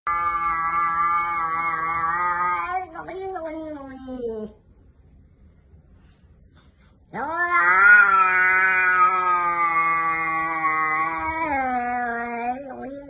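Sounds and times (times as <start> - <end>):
cat yowling: 0.1 - 4.6, 7.1 - 13.0.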